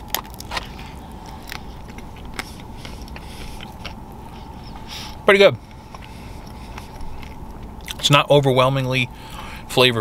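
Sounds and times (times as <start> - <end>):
soft chewing clicks: 0.0 - 4.9, 5.6 - 8.1
steady low hum inside car: 0.0 - 10.0.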